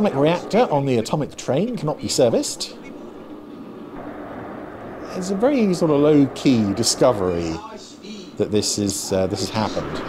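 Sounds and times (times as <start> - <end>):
train running rumble: 0.0 - 10.0.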